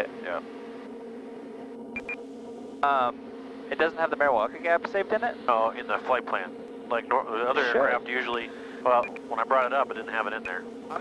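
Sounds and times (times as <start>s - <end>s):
turboprop engine drone: 0.0s - 11.0s
short electronic beeps: 2.0s - 2.2s.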